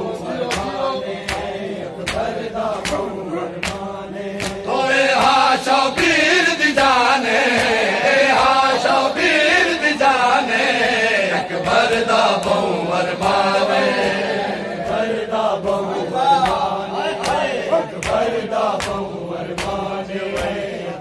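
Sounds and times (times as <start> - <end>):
men chanting a lament: 0.0 - 21.0
hands slapping chests: 0.4 - 8.8, 11.5 - 20.8.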